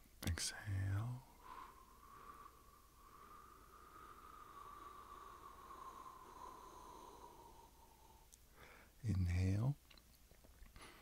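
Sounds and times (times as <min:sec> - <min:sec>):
person exhaling slowly: 0:01.2 - 0:08.9.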